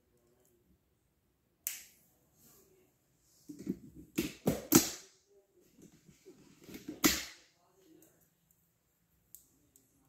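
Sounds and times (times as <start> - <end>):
knocks and rubbing on desk: 3.5 - 4.8.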